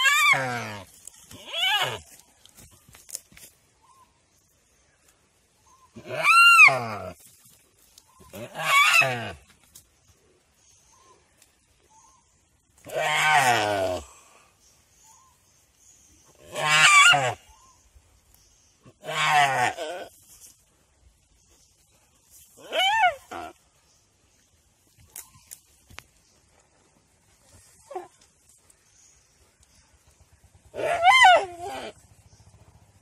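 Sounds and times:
deer crying in distress: 0.0 - 2.0, 6.0 - 7.1, 8.3 - 9.4, 12.9 - 14.1, 16.4 - 17.4, 19.0 - 20.1, 22.6 - 23.5, 30.7 - 32.0.

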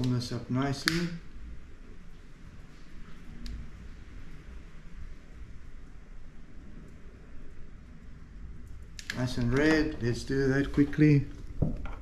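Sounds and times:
lighter click: 0.8 - 1.1.

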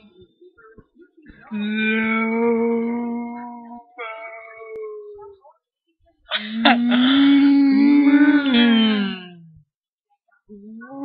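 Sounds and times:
person singing a long note: 6.7 - 9.5.

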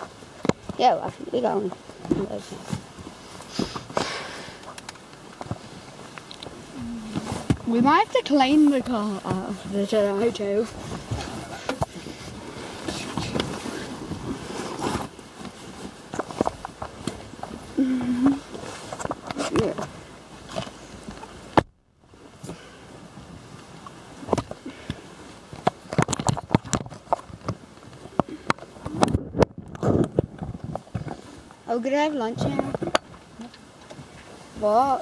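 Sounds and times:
fabric rustling: 5.6 - 21.1
short vocal sound: 6.7 - 7.5, 17.8 - 18.4.

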